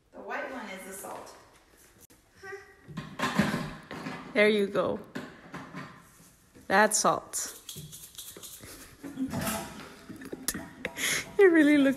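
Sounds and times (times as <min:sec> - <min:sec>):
small child vocal sound: 0:02.4 - 0:02.8.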